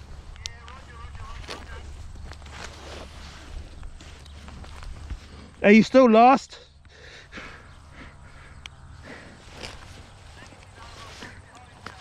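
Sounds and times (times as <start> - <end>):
steady low rumble: 0.0 - 5.7
harness straps rustling: 0.0 - 5.8, 7.3 - 12.0
buckles clicking: 8.5 - 12.0.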